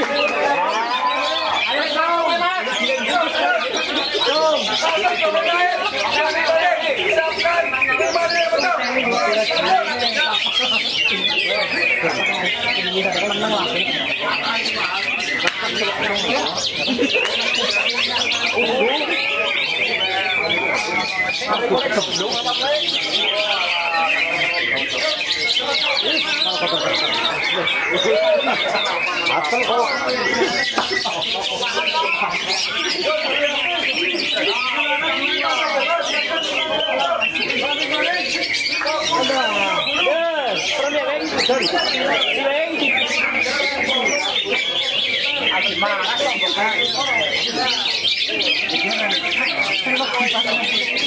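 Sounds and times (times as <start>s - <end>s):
people's voices: 0.0s - 51.0s
songbirds chirping and trilling: 0.0s - 51.0s.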